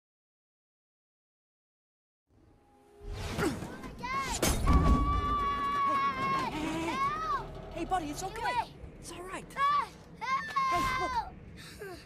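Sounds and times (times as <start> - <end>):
film soundtrack music: 2.4 - 12.0
low rumble: 4.7 - 10.3.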